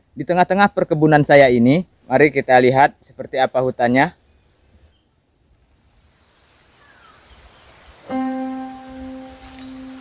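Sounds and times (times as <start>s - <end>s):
faint background hiss: 0.0s - 10.0s
high-pitched insect chorus: 0.0s - 10.0s.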